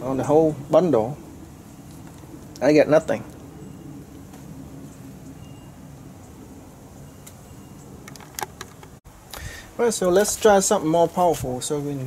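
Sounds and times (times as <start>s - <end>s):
steady low hum: 0.0s - 12.0s
clicks and rattles of handled wires: 8.0s - 9.0s.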